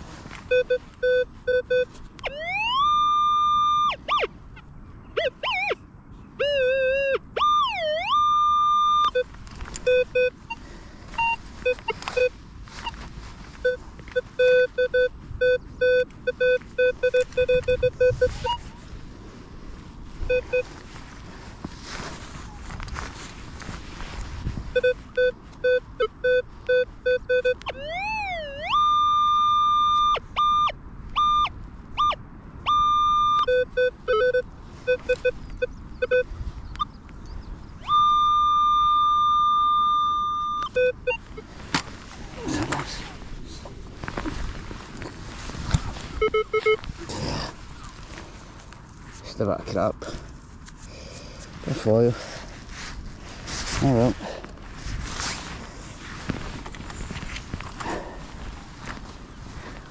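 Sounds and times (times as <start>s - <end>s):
metal detector steady tones: 0.4s - 4.3s, 5.1s - 5.8s, 6.4s - 18.8s, 20.2s - 20.8s, 24.7s - 41.5s, 45.8s - 46.9s
metal detector beeps: 0.5s - 4.3s, 5.2s - 5.8s, 6.4s - 13.0s, 13.6s - 18.8s, 20.3s - 20.7s, 24.7s - 37.0s, 37.8s - 41.4s, 46.1s - 46.9s.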